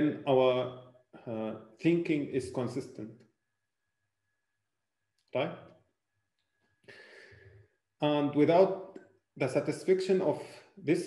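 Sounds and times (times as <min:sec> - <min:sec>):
faint breath intake: 0:06.9 - 0:07.6.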